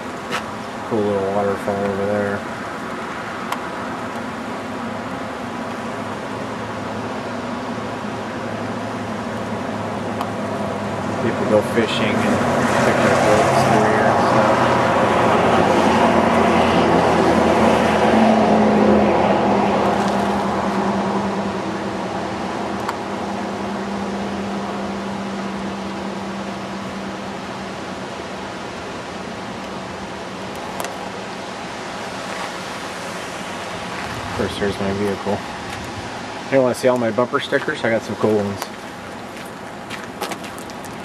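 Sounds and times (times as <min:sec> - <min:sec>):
steady rush of noise: 0:00.0 - 0:41.0
vehicle driving by: 0:08.5 - 0:27.2.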